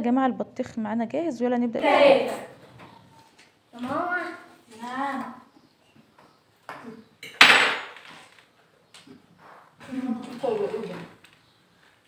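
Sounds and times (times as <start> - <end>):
sharp knock: 7.4 - 8.0.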